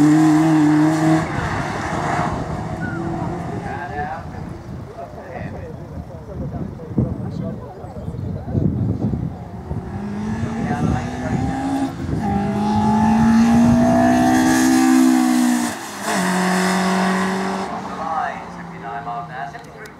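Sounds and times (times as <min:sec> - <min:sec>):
car engine accelerating past: 0:09.7 - 0:18.5.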